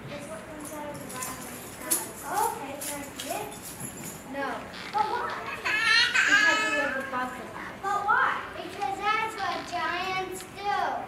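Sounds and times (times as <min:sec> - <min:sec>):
children speaking indistinctly: 0:00.0 - 0:11.0.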